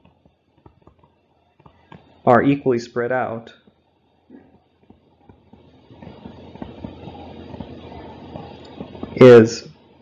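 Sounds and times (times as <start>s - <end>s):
stylus scratching on tablet: 0.0s - 10.0s.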